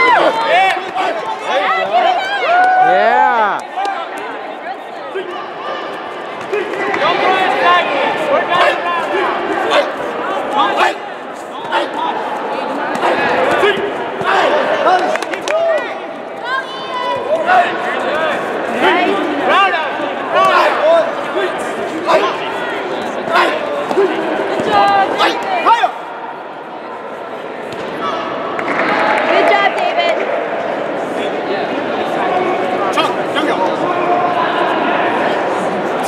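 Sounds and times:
many voices shouting: 0.0s - 26.1s.

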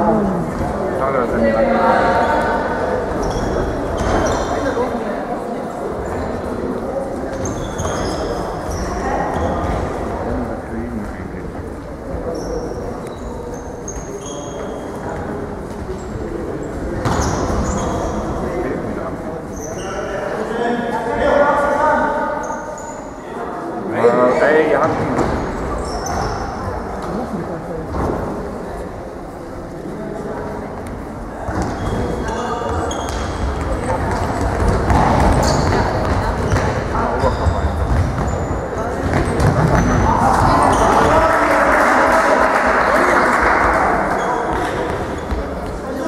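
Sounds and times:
spectator chatter: 0.0s - 46.0s
voices in echoing hall: 0.0s - 46.0s
shoes squeaking on floor: 2.1s - 5.0s, 7.3s - 10.0s, 12.2s - 18.6s, 19.4s - 20.3s, 22.4s - 23.2s, 24.9s - 27.2s, 31.4s - 41.3s, 44.1s - 46.0s.

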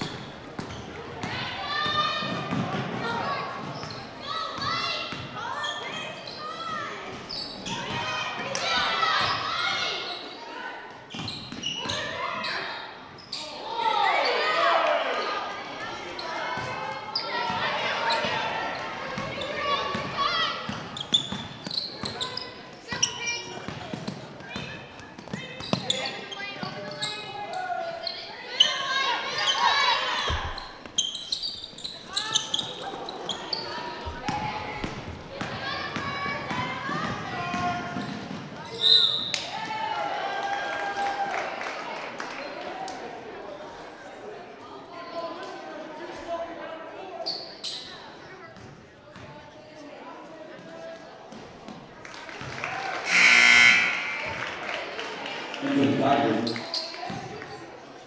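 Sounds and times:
indistinct voices: 53.0s - 56.6s.

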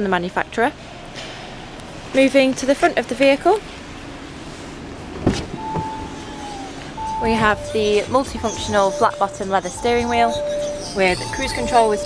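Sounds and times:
car door latch clunk: 5.1s - 6.4s.

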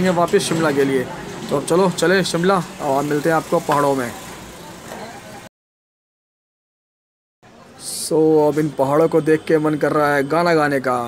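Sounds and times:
road traffic rumble: 0.0s - 5.5s.

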